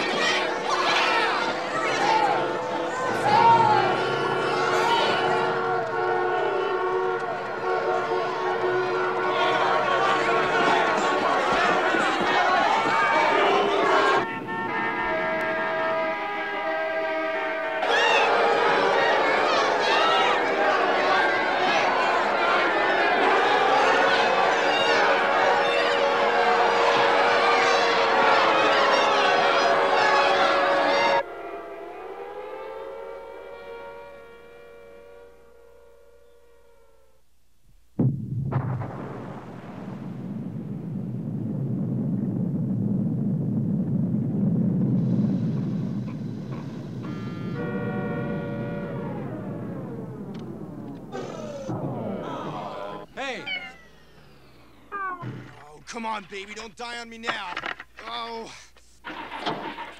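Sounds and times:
panicking crowd shouting: 0.0s - 35.9s, 46.6s - 55.6s
wailing sirens: 0.0s - 37.4s, 42.1s - 55.7s
deep rumble of detonation: 37.8s - 53.2s
explosion blast: 38.0s - 53.2s.

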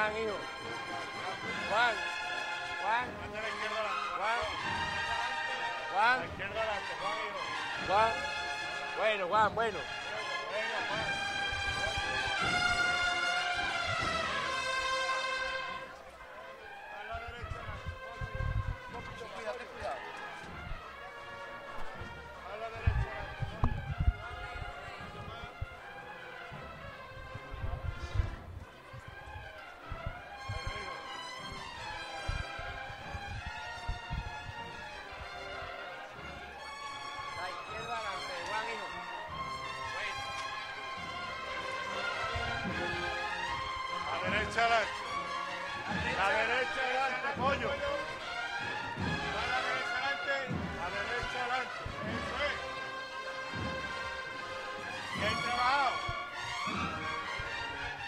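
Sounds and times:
cornets playing march melody: 0.0s - 58.0s.

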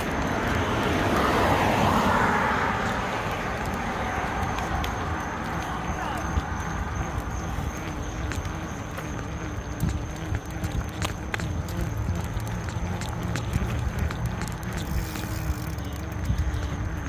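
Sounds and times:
bicycle riding rumble: 0.0s - 17.0s.

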